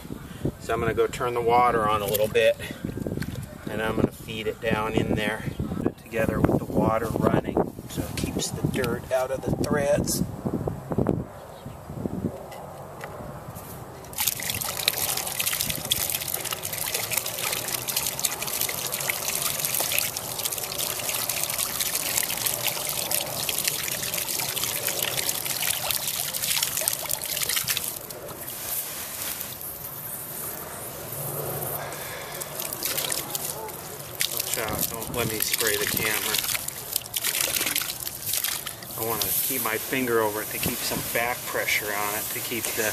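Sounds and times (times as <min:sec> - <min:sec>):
water splashing from pipe: 0:14.0 - 0:29.9, 0:31.7 - 0:42.9.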